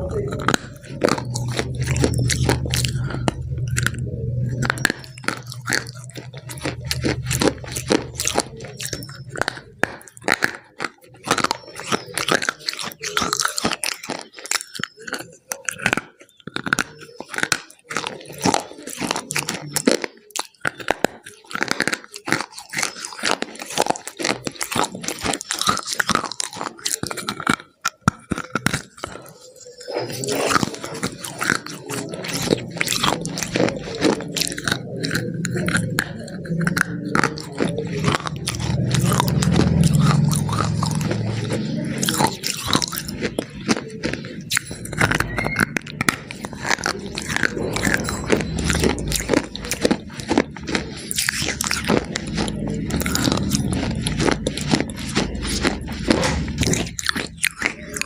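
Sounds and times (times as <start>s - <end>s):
crunchy food chewing: 0.0s - 58.0s.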